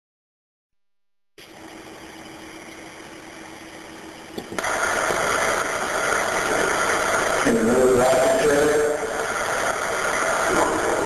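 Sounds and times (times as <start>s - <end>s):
faint steady hum: 1.4s - 11.0s
recording hiss: 4.4s - 11.0s.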